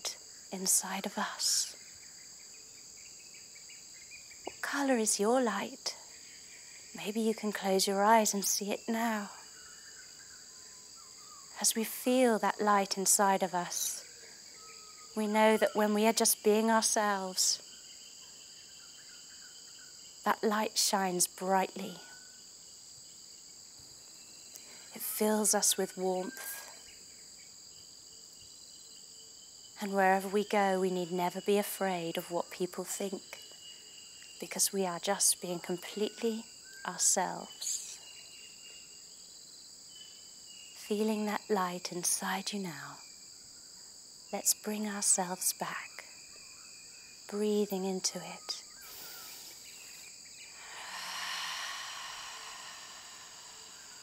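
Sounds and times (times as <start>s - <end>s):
woman's voice: 0.0s - 1.7s, 4.5s - 6.0s, 7.0s - 9.4s, 11.6s - 14.0s, 15.2s - 17.6s, 20.3s - 22.1s, 25.0s - 26.7s, 29.8s - 33.4s, 34.4s - 38.0s, 40.8s - 43.0s, 44.4s - 46.0s, 47.3s - 48.6s
crickets chirping: 0.0s - 54.0s
insect chorus: 0.0s - 54.0s
soft hiss: 0.0s - 54.0s.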